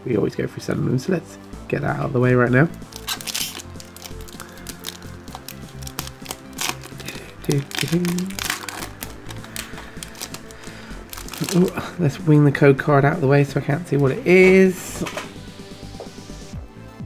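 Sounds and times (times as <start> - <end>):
background music: 0.0 - 17.0
foil wrapper crinkling and tearing: 2.9 - 11.9.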